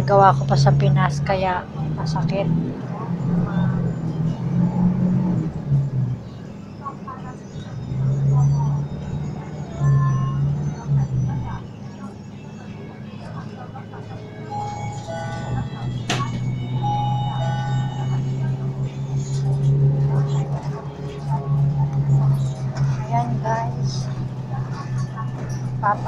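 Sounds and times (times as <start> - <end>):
bus engine hum: 0.0 - 26.0
music-like tones: 0.0 - 26.0
passengers talking: 0.0 - 26.0.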